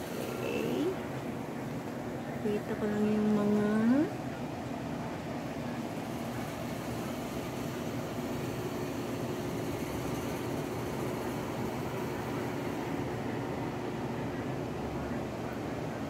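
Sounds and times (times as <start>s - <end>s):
faint steady tones: 0.0s - 16.0s
low mechanical hum: 0.0s - 16.0s.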